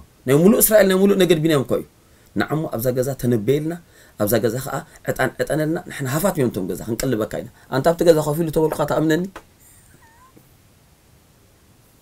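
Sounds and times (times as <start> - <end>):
faint high squeak: 9.7 - 10.4.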